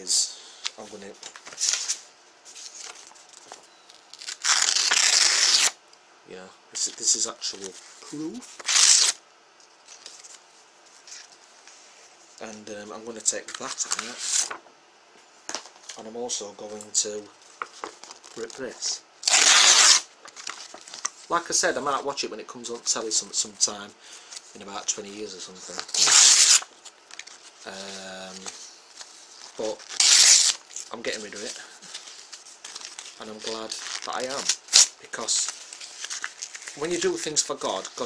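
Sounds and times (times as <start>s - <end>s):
paper tearing: 4.1s - 5.8s, 8.6s - 9.2s, 18.0s - 21.1s, 25.5s - 38.0s.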